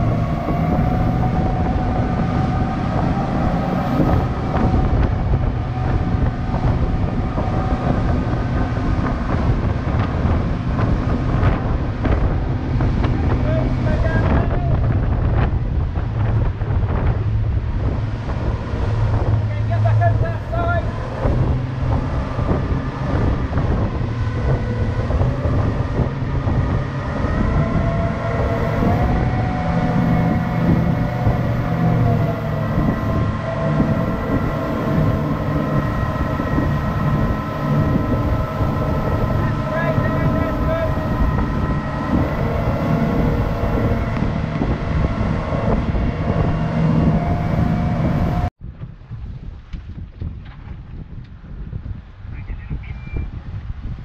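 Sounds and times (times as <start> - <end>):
outboard motors whining: 0.0 - 48.6
rushing water wake: 0.0 - 48.6
wind on microphone: 0.0 - 54.0.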